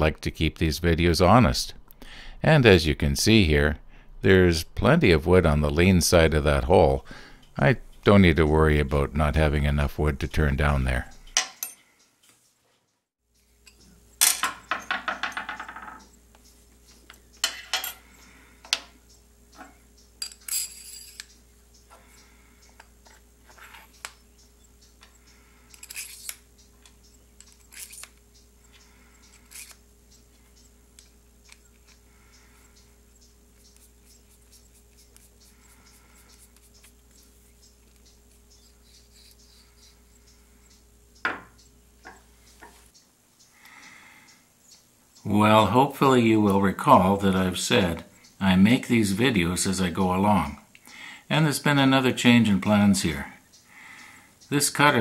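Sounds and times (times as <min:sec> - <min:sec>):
low steady hum: 0:00.0 - 0:12.2, 0:13.3 - 0:55.0
metal piece rattling on table: 0:14.2 - 0:16.1, 0:20.2 - 0:21.3
steel parts clinking on metal table: 0:20.2 - 0:21.3
rubbing and ticking of corkscrew: 0:22.6 - 0:43.0.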